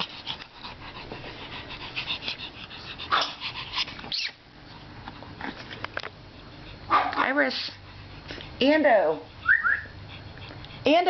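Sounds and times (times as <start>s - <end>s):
dog sniffing and breathing: 0.0s - 11.0s.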